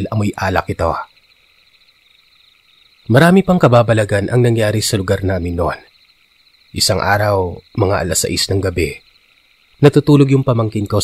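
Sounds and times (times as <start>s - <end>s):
night insects chirring: 0.0s - 11.0s.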